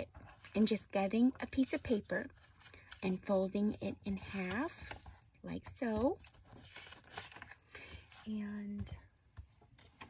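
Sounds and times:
paper rustling and crinkling: 0:04.2 - 0:05.2, 0:06.0 - 0:08.3.

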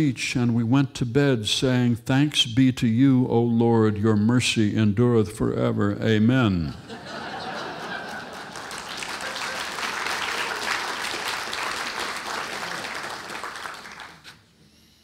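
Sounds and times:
audience applause: 0:07.4 - 0:14.4.

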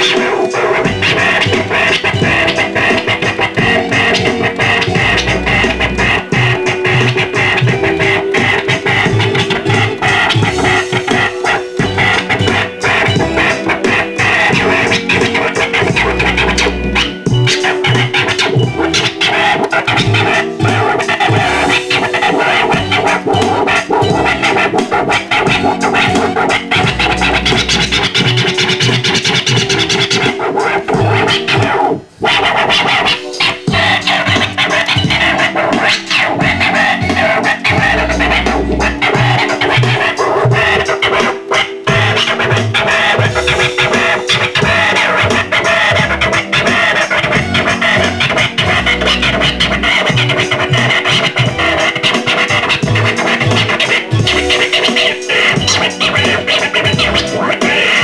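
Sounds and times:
backing beat: 0:00.0 - 0:58.0
vinyl record scratching: 0:00.0 - 0:58.0.

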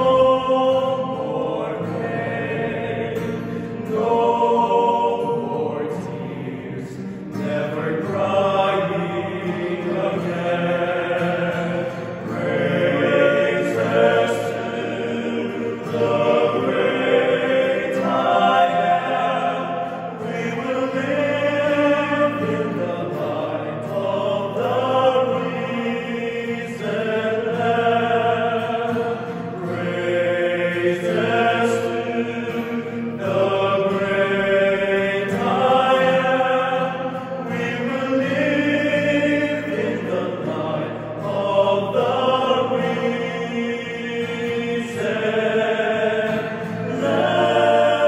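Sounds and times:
acoustic guitar chords: 0:00.0 - 0:48.0
male vocal ensemble singing: 0:00.0 - 0:48.0.

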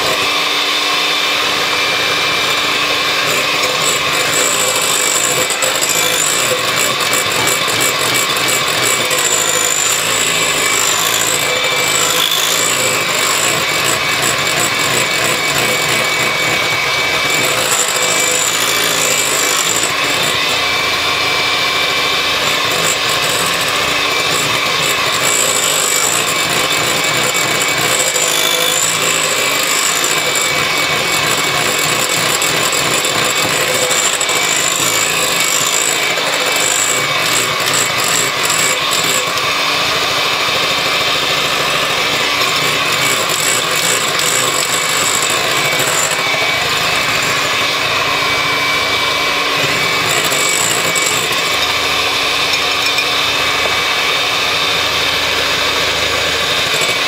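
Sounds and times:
electric mixer whipping: 0:00.0 - 0:57.0.

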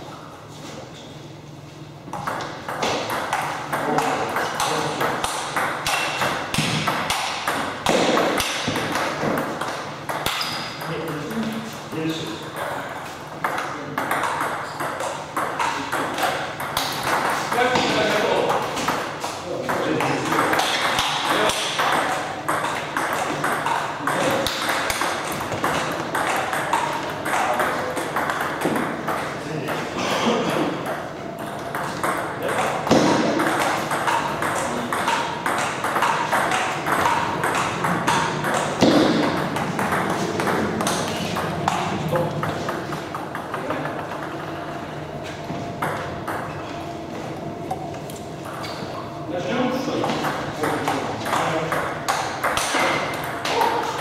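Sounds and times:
ball bouncing on table: 0:02.1 - 0:11.6, 0:12.5 - 0:44.7, 0:45.8 - 0:46.6, 0:50.0 - 0:54.0
ball clicking off paddles: 0:30.7 - 0:44.8, 0:50.0 - 0:54.0.

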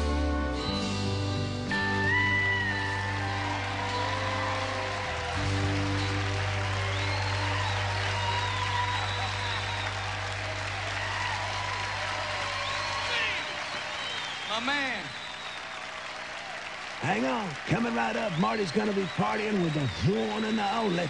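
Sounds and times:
live band music: 0:00.0 - 0:08.9
audience applauding and cheering: 0:01.7 - 0:21.0.

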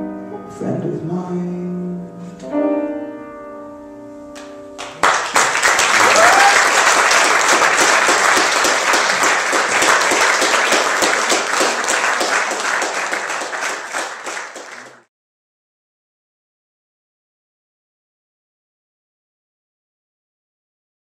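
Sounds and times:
audience applause: 0:04.8 - 0:15.1.

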